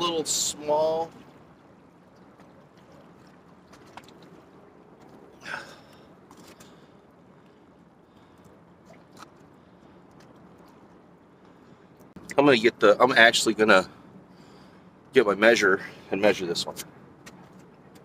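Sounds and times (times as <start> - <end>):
shallow water washing: 0.0 - 15.0.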